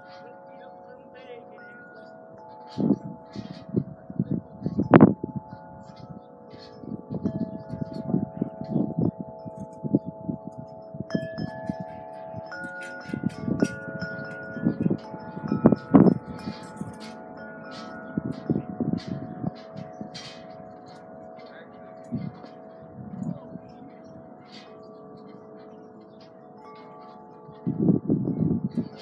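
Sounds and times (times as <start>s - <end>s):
wind chime ringing: 0.0s - 29.0s.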